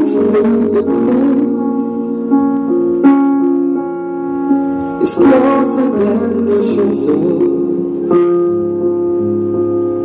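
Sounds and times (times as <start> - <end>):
piano playing slow ballad: 0.0 - 10.0.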